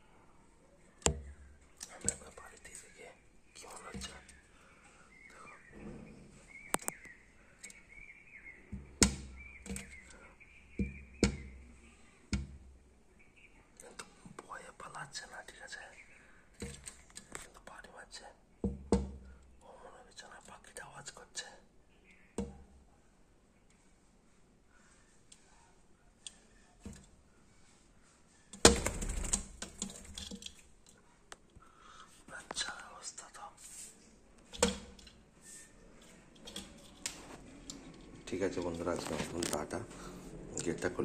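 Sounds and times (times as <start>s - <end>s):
soft whispering: 1.7s - 5.8s, 13.5s - 16.4s, 17.2s - 18.5s, 19.5s - 21.8s, 24.6s - 26.8s, 30.9s - 34.2s
bird beak tapping on glass: 8.7s - 11.7s, 12.3s - 12.6s, 18.6s - 19.4s, 22.1s - 22.8s, 34.4s - 35.2s.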